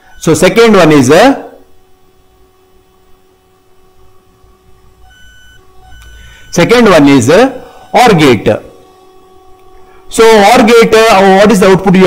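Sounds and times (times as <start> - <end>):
high-pitched electronic tones: 0.0 - 0.6, 4.8 - 8.5
high whine: 0.0 - 12.0.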